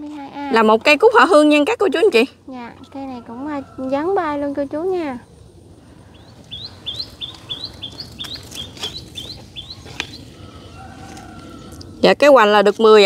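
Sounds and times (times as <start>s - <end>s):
small bird chirping: 5.8s - 12.8s.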